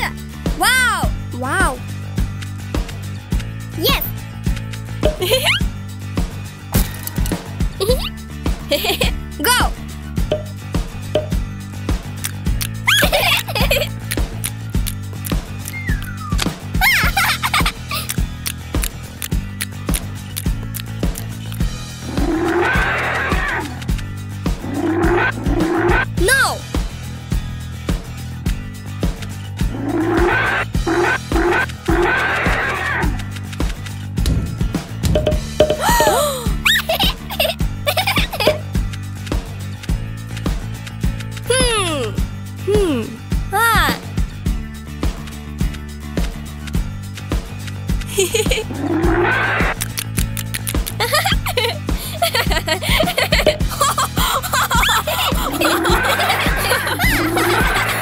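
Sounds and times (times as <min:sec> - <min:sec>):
background music with beat: 0:04.7 - 0:09.0, 0:09.8 - 0:22.3, 0:34.1 - 0:36.5, 0:37.7 - 0:49.1, 0:49.7 - 0:58.0
cartoon dinosaur roar: 0:22.0 - 0:23.8, 0:24.6 - 0:26.2, 0:29.7 - 0:33.2, 0:48.7 - 0:49.8.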